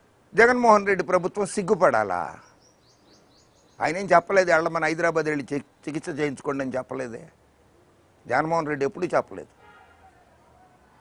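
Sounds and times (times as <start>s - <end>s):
man talking: 0.3s - 2.4s, 3.8s - 7.4s, 8.2s - 9.5s
small bird chirping: 2.2s - 4.3s.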